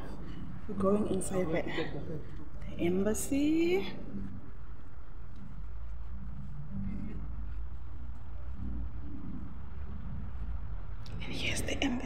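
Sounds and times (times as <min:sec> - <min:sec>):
steady low rumble: 0:00.0 - 0:12.0
person whispering: 0:11.1 - 0:12.0.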